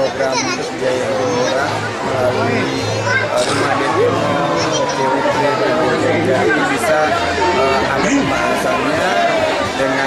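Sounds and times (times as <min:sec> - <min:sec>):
crowd chattering: 0:00.0 - 0:10.0
man speaking close to microphone: 0:00.0 - 0:10.0.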